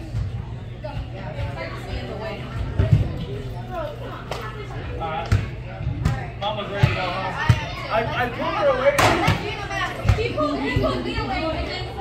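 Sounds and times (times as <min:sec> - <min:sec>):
voices: 0:00.0 - 0:12.0.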